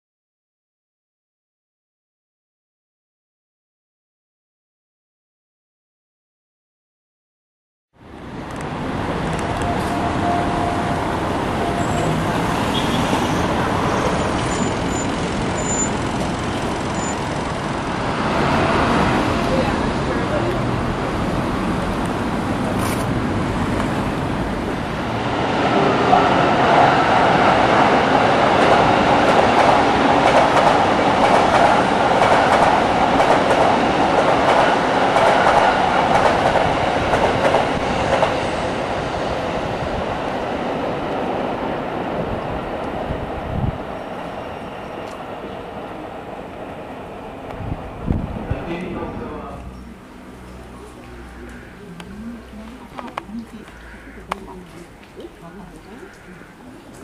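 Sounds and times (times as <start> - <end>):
electric train running past: 8.0 - 56.8
street traffic: 8.0 - 57.0.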